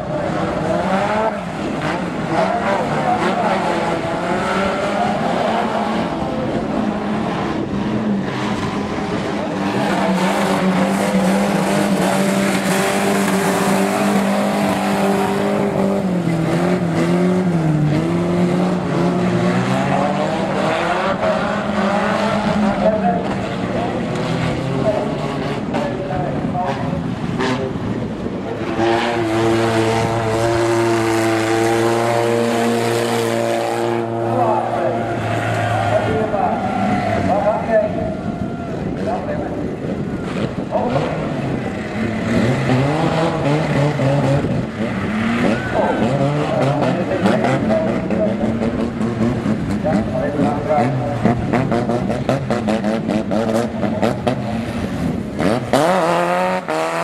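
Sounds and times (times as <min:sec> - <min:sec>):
car engines revving under load: 0:00.0 - 0:57.0.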